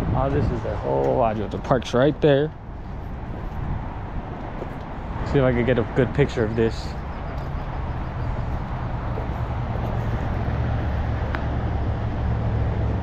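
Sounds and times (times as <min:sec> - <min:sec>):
distant road traffic rumble: 0:00.0 - 0:13.0.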